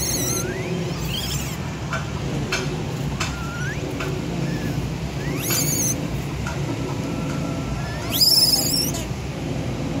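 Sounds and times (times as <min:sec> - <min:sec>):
baby monkey shrill call: 0:00.0 - 0:01.6, 0:03.2 - 0:06.0, 0:07.0 - 0:09.1.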